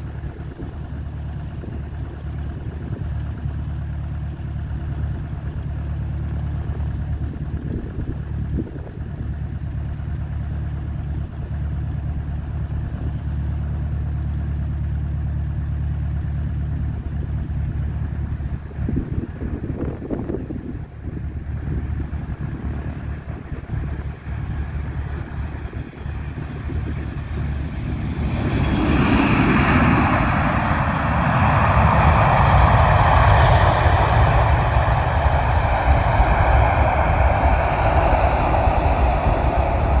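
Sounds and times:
low engine hum: 0.0 - 40.0
jet engine roar of landing airliner: 18.8 - 40.0.

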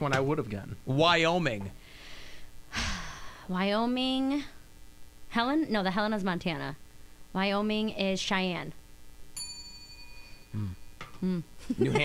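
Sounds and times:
bell ding: 9.4 - 11.0.

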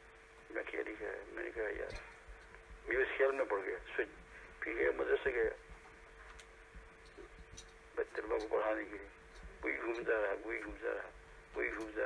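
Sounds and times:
faint steady hum: 0.0 - 12.0
man speaking: 0.5 - 2.2, 2.8 - 5.6, 8.0 - 12.0.

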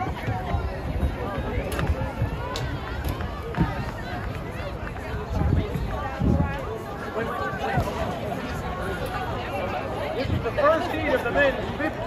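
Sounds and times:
indistinct crowd chatter: 0.0 - 12.0.

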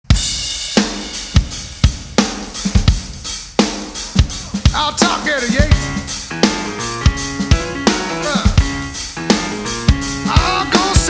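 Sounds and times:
kick and snare drum beat: 0.0 - 11.0.

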